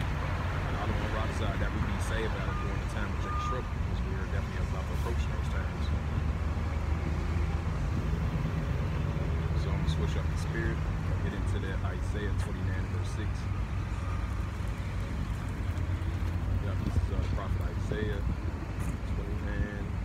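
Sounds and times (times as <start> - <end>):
vehicles idling and passing: 0.0 - 20.0.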